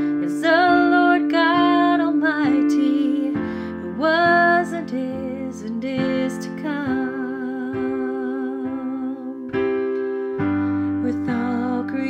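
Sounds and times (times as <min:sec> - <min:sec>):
woman singing with vibrato: 0:00.0 - 0:09.7, 0:11.0 - 0:12.0
piano chord: 0:00.0 - 0:12.0.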